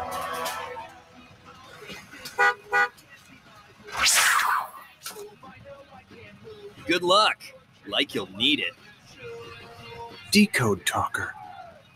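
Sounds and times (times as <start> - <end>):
vehicle horn tooting: 2.4 - 3.0.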